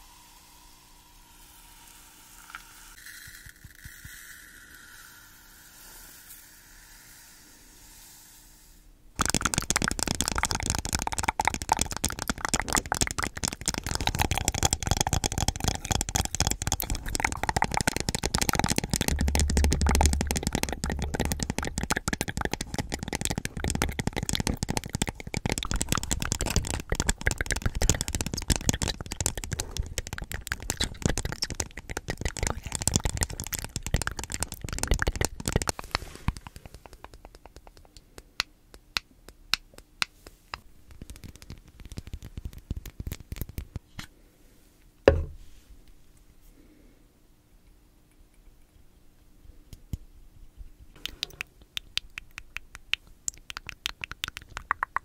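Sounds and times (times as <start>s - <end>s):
granules rattling in plastic cup: 9.2s - 37.7s.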